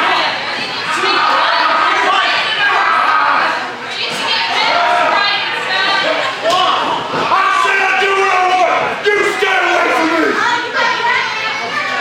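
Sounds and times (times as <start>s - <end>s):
voices shouting in a hall: 0.0s - 12.0s.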